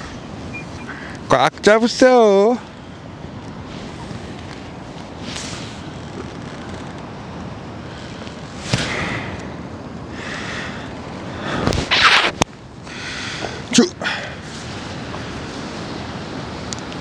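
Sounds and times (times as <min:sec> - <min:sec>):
sharp crack: 0:08.6 - 0:09.5, 0:11.6 - 0:12.5.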